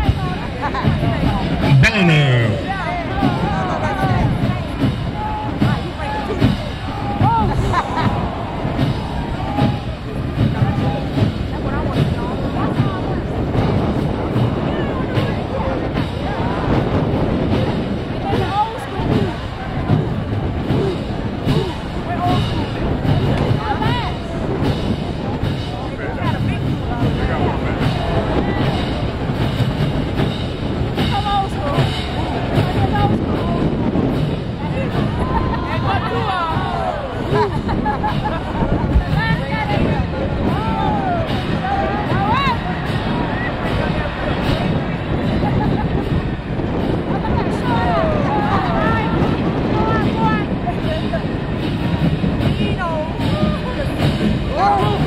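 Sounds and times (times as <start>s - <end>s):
crowd talking: 0.0s - 55.0s
marching band drums: 0.0s - 55.0s.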